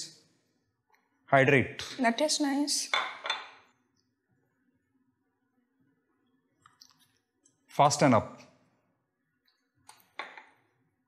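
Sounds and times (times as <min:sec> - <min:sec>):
drinking glass clinking: 0:02.9 - 0:03.7.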